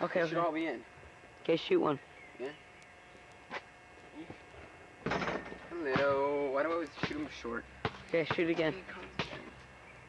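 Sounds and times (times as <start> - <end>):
basketball impact: 5.0 - 9.6.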